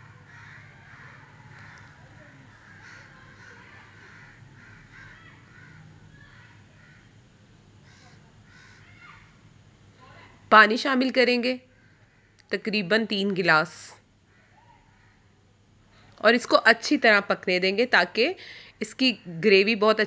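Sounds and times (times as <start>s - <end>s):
crows cawing: 0.0s - 7.2s, 7.8s - 9.4s, 11.7s - 12.5s, 14.3s - 15.3s
low steady hum: 0.0s - 20.0s.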